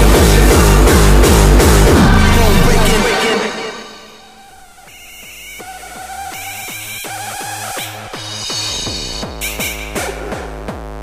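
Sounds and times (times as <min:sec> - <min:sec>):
heavy kick drums: 0:00.0 - 0:03.6, 0:05.2 - 0:11.0.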